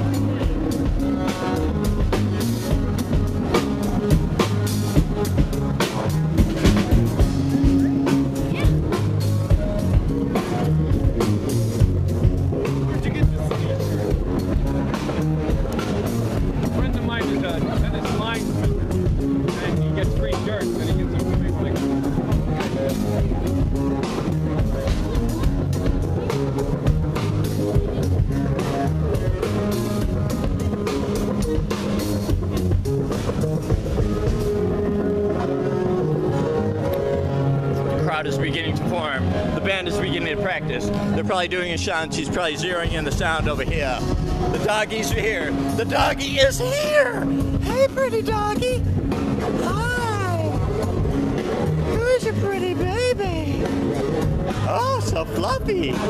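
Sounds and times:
drum beat: 0:00.0 - 0:34.7, 0:40.6 - 0:56.0
electric guitar: 0:18.4 - 0:38.0.

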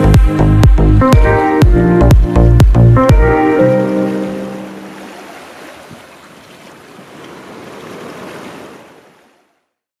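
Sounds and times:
ocean waves washing: 0:02.7 - 0:09.7.

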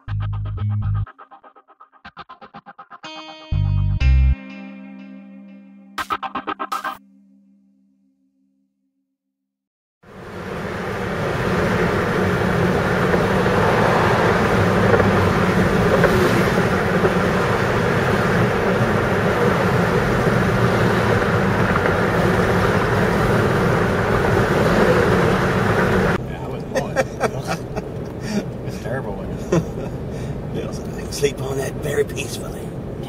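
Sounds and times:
car road and wind noise: 0:10.0 - 0:33.0.

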